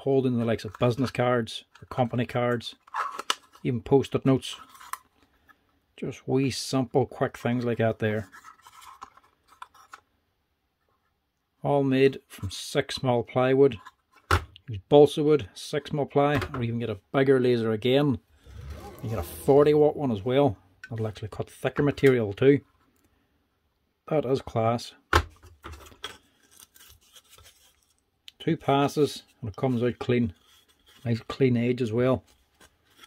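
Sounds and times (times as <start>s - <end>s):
plywood box clicking and rubbing: 2.8s - 3.7s
plywood pieces scraping and clicking: 2.8s - 3.7s, 4.6s - 5.1s, 8.2s - 10.0s.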